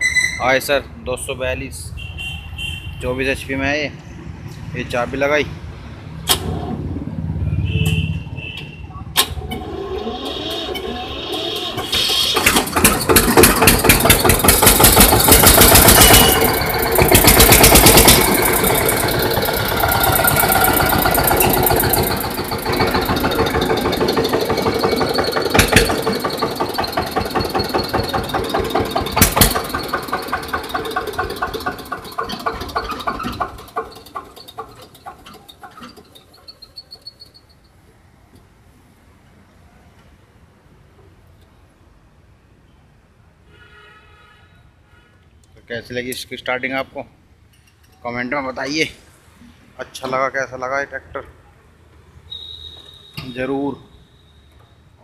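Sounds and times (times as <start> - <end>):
diesel tractor engine running: 9.1 - 37.1
starter motor cranking: 9.2 - 36.8.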